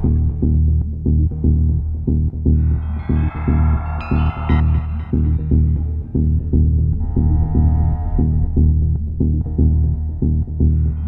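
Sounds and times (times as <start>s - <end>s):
layered synth tones: 0.0s - 11.0s
pulsing synth bass and kick: 0.0s - 11.0s.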